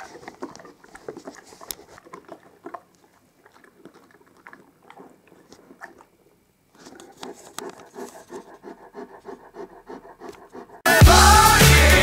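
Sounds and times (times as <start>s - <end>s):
dog chewing a treat: 0.0s - 10.8s.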